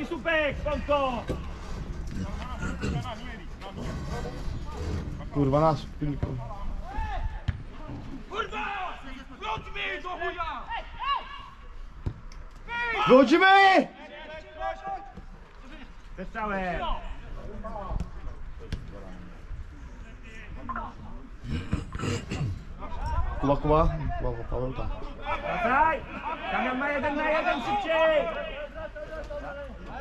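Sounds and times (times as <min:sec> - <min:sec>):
man shouting: 0:12.7 - 0:13.9.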